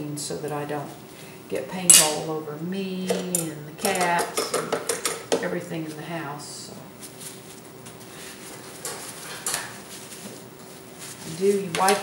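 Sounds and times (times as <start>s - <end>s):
faint steady hum: 0.0s - 12.0s
tissue rustling: 6.9s - 12.0s.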